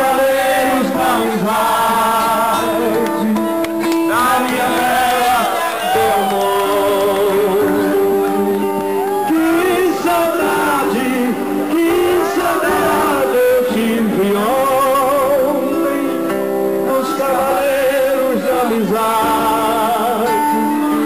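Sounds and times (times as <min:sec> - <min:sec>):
guitar: 0:00.0 - 0:21.0
men singing: 0:00.0 - 0:21.0.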